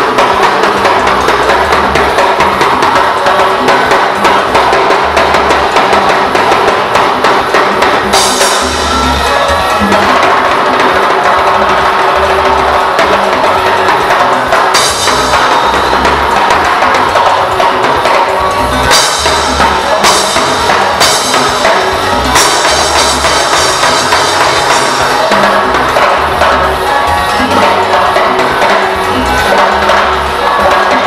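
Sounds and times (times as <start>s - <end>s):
live band playing: 0.0s - 31.0s.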